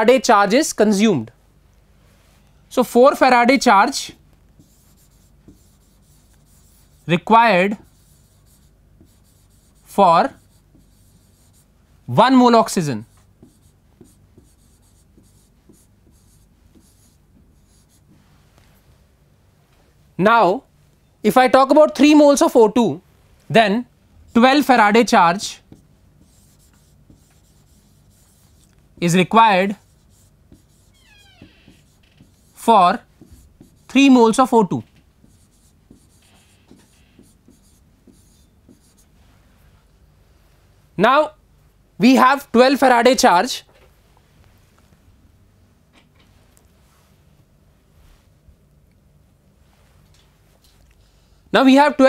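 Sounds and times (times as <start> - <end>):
chalk writing on chalkboard: 4.6 - 11.8, 13.0 - 18.4, 24.3 - 34.5, 35.2 - 39.2.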